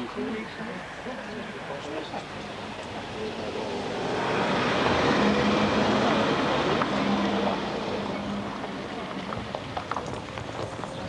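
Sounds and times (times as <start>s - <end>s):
vehicle passing: 0.0s - 11.0s.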